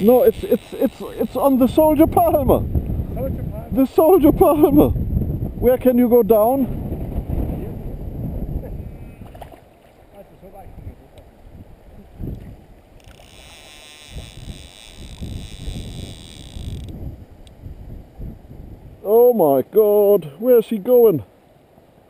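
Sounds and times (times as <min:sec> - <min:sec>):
fly reel drag buzzing: 0:00.0 - 0:02.0, 0:12.9 - 0:17.0
wind rumbling on microphone: 0:00.0 - 0:19.3.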